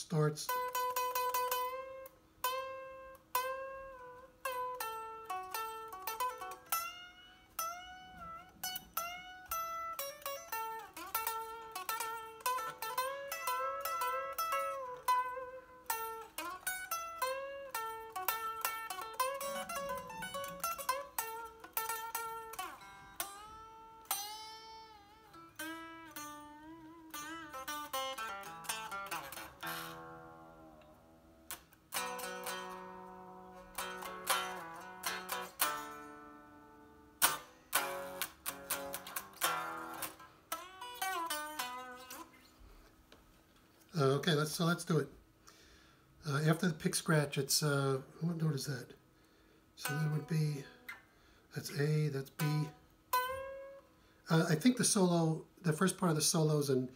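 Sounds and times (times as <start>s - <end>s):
unamplified electric guitar solo: 0.2s - 43.0s, 49.8s - 54.6s.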